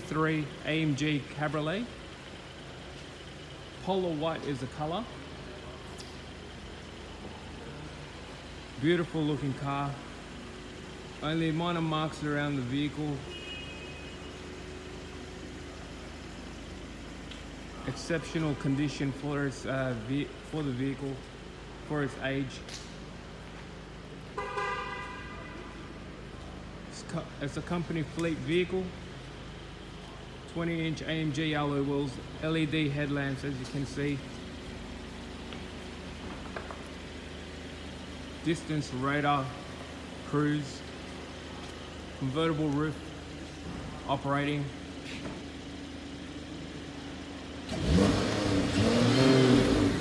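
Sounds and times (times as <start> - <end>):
car engine humming and revving: 0.0 - 50.0
car horn: 13.1 - 14.5, 24.3 - 26.0.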